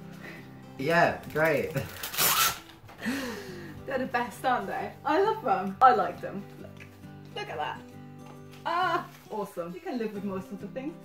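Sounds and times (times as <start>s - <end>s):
short ripping rasp: 1.9s - 2.7s.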